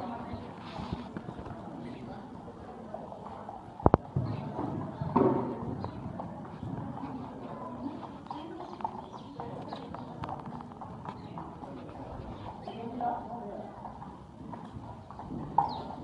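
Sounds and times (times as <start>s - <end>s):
horse hoofbeats on soft ground: 4.0s - 16.0s.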